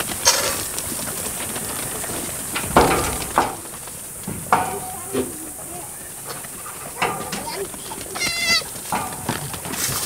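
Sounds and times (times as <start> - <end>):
goat kid bleating: 7.4 - 8.7.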